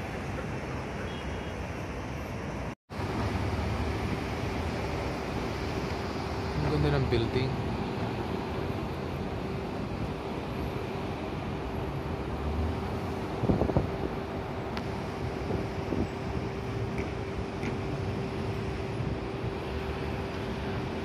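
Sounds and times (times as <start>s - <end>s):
constant hum: 0.0s - 21.0s
passing traffic: 0.0s - 21.0s
wind on microphone: 12.7s - 21.0s.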